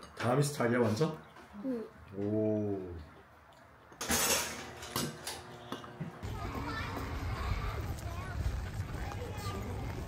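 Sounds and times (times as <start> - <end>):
children's voices: 6.2 - 10.0.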